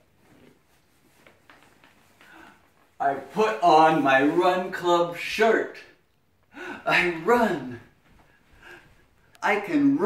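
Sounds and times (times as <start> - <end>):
faint rustling of a shirt: 0.0 - 5.2.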